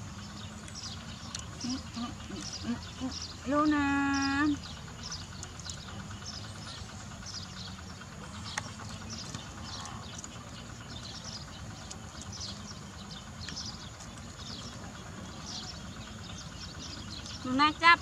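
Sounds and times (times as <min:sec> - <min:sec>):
high chirping calls: 0:00.0 - 0:18.0
low outdoor rumble: 0:00.0 - 0:18.0.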